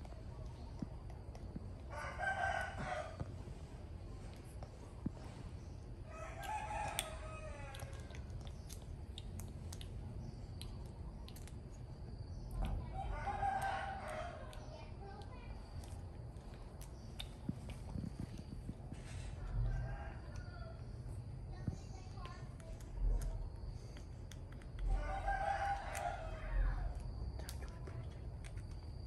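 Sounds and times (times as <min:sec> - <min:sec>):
rooster crowing: 0:01.9 - 0:03.3, 0:06.1 - 0:08.2, 0:13.0 - 0:14.5, 0:19.4 - 0:20.8, 0:24.9 - 0:26.9.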